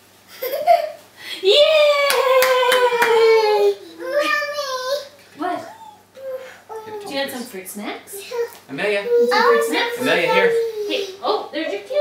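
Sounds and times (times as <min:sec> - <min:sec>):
hand clapping: 0:02.0 - 0:03.4.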